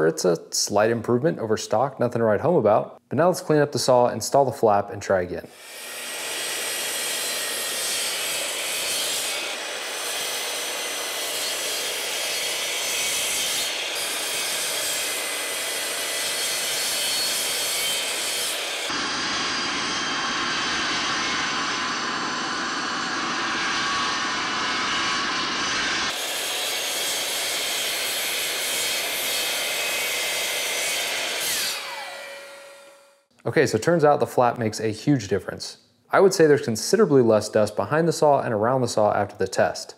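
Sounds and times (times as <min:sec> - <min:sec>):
miter saw cutting wood: 0:05.5 - 0:33.2
shop vacuum running: 0:05.6 - 0:33.1.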